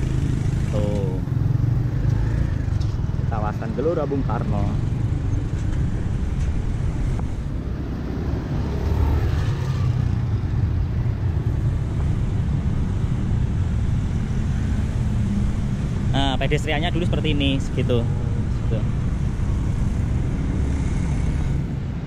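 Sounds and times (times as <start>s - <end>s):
cars and motorcycles driving past: 0.0s - 22.0s.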